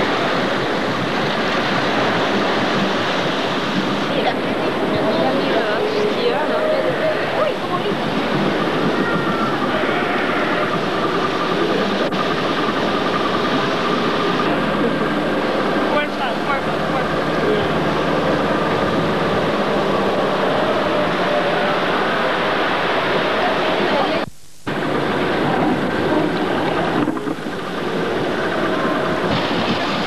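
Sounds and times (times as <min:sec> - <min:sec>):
constant rushing noise: 0:00.0 - 0:30.0
small boat motor running: 0:00.0 - 0:30.0.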